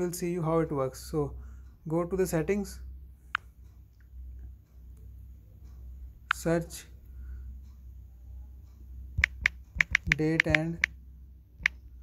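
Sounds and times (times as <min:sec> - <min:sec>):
smartphone keyboard typing clicks: 0:09.2 - 0:11.0.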